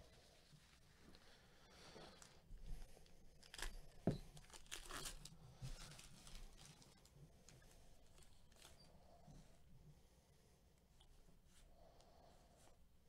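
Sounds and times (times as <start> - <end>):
wrapper ripping and rustling: 3.4 - 7.0.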